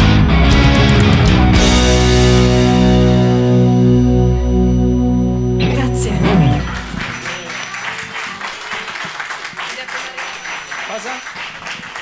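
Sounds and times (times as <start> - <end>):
audience applauding: 5.7 - 12.0.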